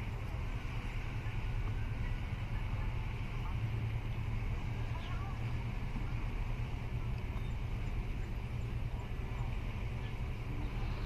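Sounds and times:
harbour background rumble and hiss: 0:00.0 - 0:11.0.

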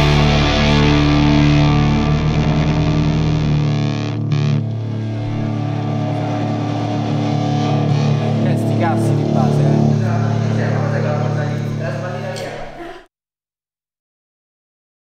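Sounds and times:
deep bass: 0:00.0 - 0:12.3
distorted electric guitar chords: 0:00.0 - 0:12.8.

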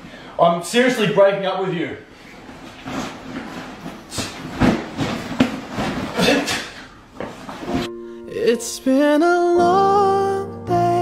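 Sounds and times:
clothes and bag rustling: 0:02.2 - 0:07.9.

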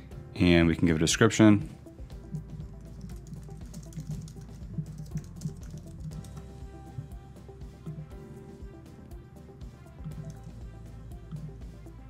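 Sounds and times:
background music with low beat: 0:00.0 - 0:12.0
computer keyboard typing: 0:02.2 - 0:06.4.

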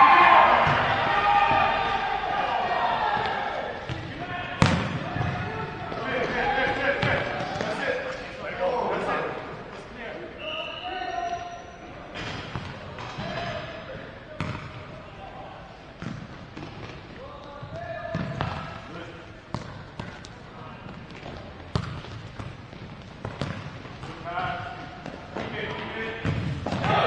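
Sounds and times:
players shouting in echoing hall: 0:00.0 - 0:16.0, 0:17.0 - 0:21.8, 0:23.4 - 0:27.0
ball kicked and bouncing on court: 0:03.2 - 0:06.4, 0:12.2 - 0:13.6, 0:14.4 - 0:14.8, 0:16.0 - 0:18.8, 0:19.5 - 0:27.0.

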